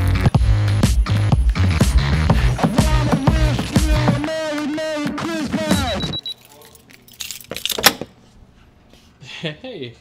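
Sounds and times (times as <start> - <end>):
keys jangling: 6.4 - 8.0.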